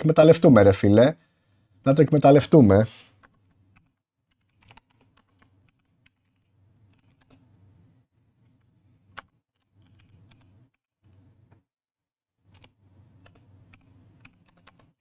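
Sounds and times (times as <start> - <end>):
faint computer keyboard typing: 3.2 - 7.4, 8.5 - 11.2, 12.4 - 15.0.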